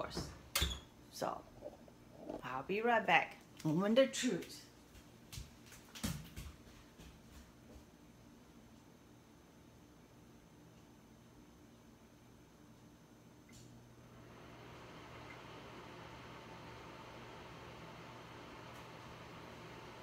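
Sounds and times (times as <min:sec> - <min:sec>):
low electrical hum: 0:00.0 - 0:20.0.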